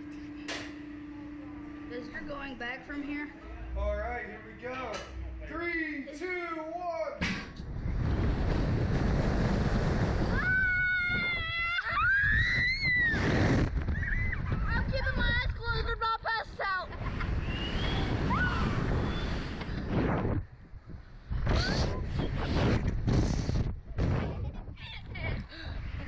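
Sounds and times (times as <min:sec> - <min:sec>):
wind rushing over microphone: 0:07.5 - 0:26.0
child screaming: 0:10.3 - 0:13.2.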